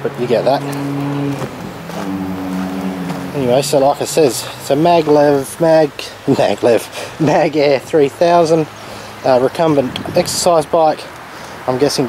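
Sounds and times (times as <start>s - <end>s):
vehicle engine running: 0.2s - 5.4s.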